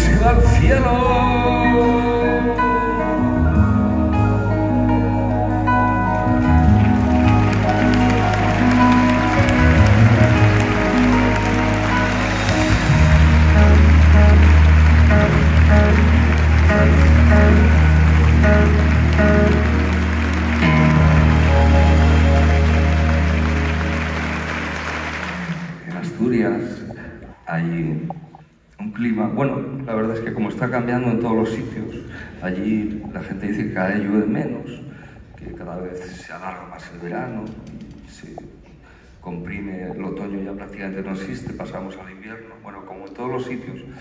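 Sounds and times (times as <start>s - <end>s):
live band music: 0.0s - 27.4s.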